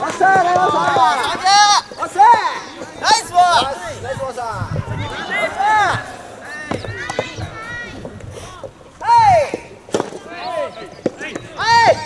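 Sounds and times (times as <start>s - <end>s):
players shouting calls: 0.0s - 12.0s.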